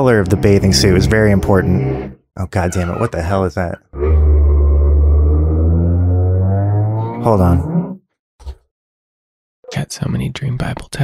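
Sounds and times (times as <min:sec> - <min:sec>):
power tool droning: 0:00.1 - 0:02.2.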